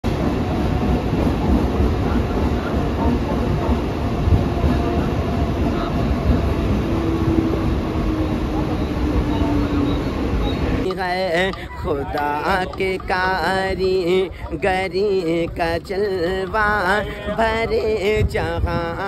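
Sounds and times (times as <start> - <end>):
electric train rumbling: 0.0 - 19.0
low train whine: 0.0 - 19.0.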